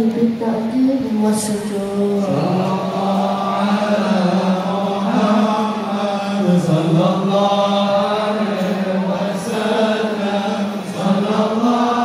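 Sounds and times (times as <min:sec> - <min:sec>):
men chanting in unison: 0:02.0 - 0:12.0.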